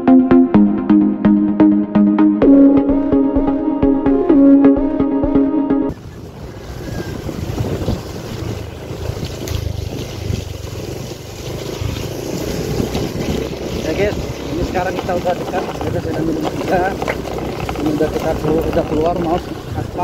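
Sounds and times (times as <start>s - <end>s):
wind on microphone: 5.9s - 10.9s, 11.7s - 20.0s
motorcycle engine rumble: 5.9s - 20.0s.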